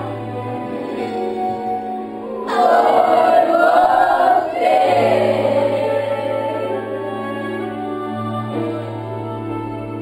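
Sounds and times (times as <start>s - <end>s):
children's choir singing: 2.4s - 10.0s.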